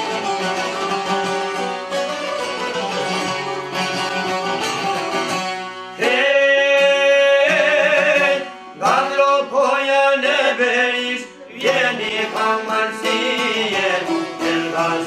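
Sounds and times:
plucked long-necked lutes: 0.0s - 15.0s
man singing long held note: 6.0s - 15.0s.

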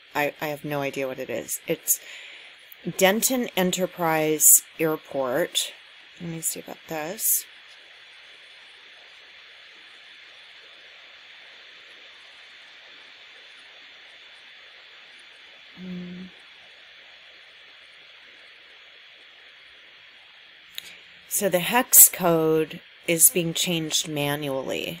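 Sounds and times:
faint thin steady tone: 0.0s - 25.0s
low background hiss: 0.0s - 25.0s
person humming briefly: 15.8s - 16.3s.

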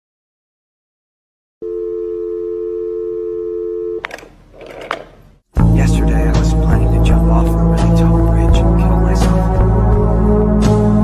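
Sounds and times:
telephone dial tone: 1.6s - 5.1s
telephone click: 4.0s - 5.2s.

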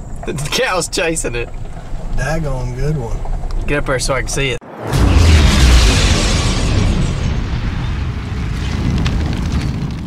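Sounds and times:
deep rumbling boom: 4.6s - 10.0s
crackle of flames: 4.7s - 10.0s.

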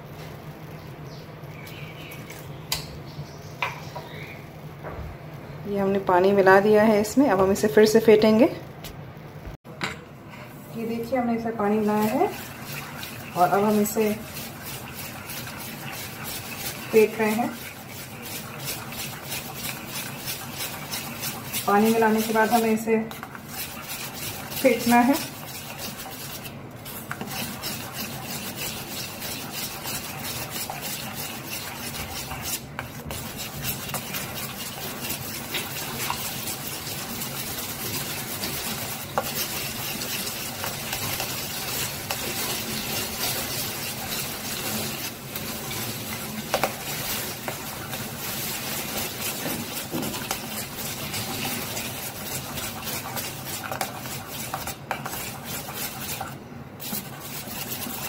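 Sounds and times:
utensil scraping metal bowl: 11.6s - 58.0s.

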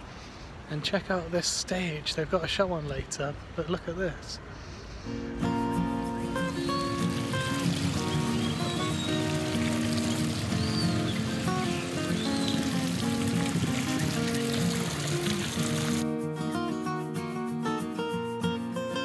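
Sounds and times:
acoustic guitar music: 5.0s - 19.0s
fountain splashing into basin: 6.4s - 16.0s.

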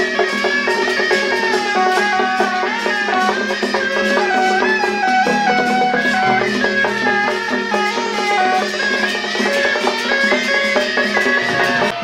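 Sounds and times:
instrumental music with drums: 0.0s - 12.0s.

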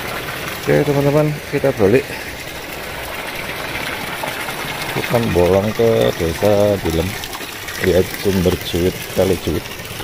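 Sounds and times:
water splashing into pool: 0.0s - 10.0s.

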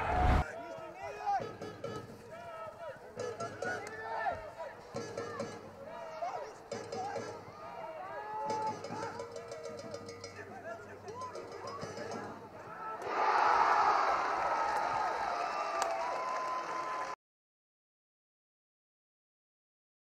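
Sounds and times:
crowd cheering loudly: 0.0s - 0.5s, 12.6s - 17.2s
stadium crowd shouting: 0.0s - 17.2s.

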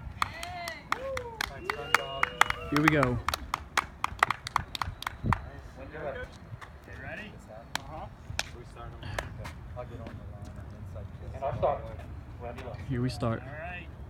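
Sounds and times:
people clapping: 0.0s - 5.6s, 7.7s - 8.6s.

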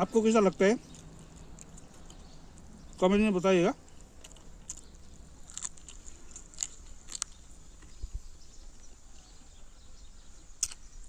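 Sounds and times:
person chewing with open mouth: 0.8s - 3.0s, 3.8s - 8.0s.

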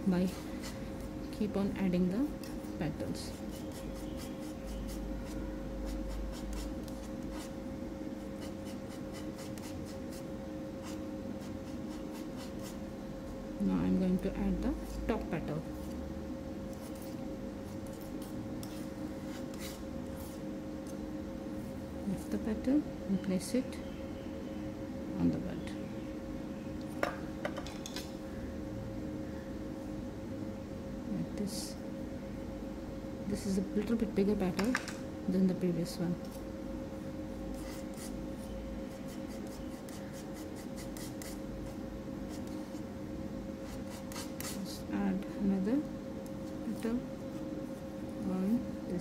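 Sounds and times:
steady low hum: 0.0s - 49.0s
palette knife scraping paste: 3.2s - 7.6s, 8.3s - 12.8s, 16.8s - 20.4s, 37.5s - 41.4s, 43.6s - 44.7s.

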